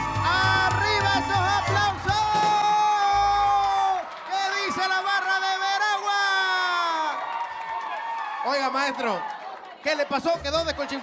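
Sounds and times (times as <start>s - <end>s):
accordion folk band music: 0.0s - 2.5s
audience whooping and cheering: 0.0s - 11.0s.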